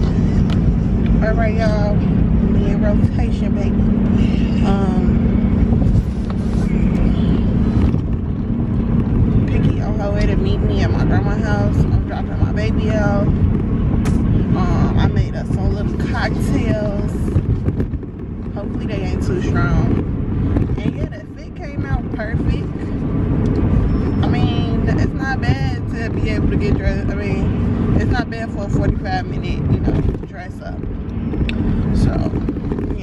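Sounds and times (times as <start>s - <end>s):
car road and engine rumble: 0.0s - 33.0s
woman talking: 1.2s - 5.3s, 9.4s - 13.4s, 14.5s - 17.4s, 18.5s - 20.0s, 20.7s - 23.0s, 24.2s - 30.9s, 31.9s - 33.0s.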